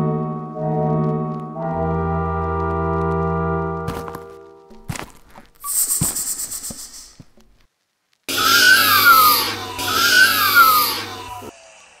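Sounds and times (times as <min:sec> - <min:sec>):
monster screech: 0:08.3 - 0:12.0.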